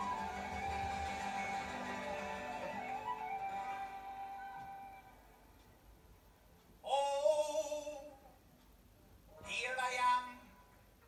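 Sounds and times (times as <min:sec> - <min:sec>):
folk band instrumental: 0:00.0 - 0:05.6.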